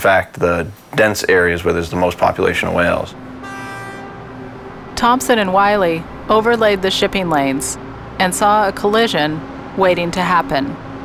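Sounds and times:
horn blowing a held note: 0:03.2 - 0:05.0.

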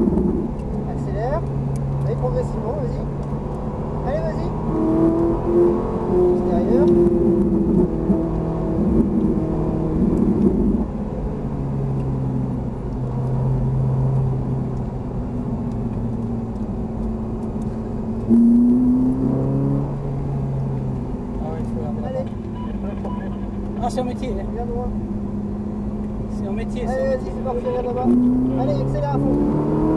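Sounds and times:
car engine revving: 0:00.0 - 0:29.9.

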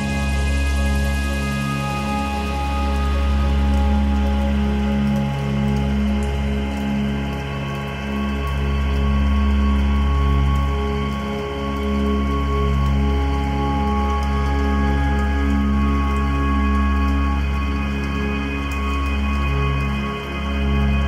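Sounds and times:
deep bass drone: 0:00.0 - 0:21.0
rain-like hiss: 0:00.0 - 0:21.0.

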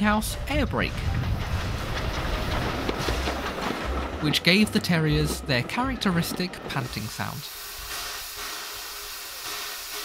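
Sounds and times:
wheels clattering over rail joints: 0:00.0 - 0:07.5
steam train rumbling past: 0:00.0 - 0:10.0.

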